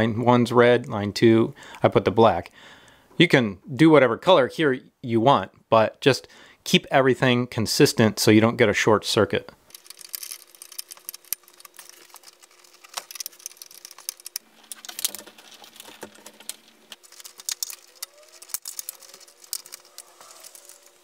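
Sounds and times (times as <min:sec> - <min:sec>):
faint steady hum: 0:00.0 - 0:21.0
wires clicking and rustling: 0:09.6 - 0:21.0.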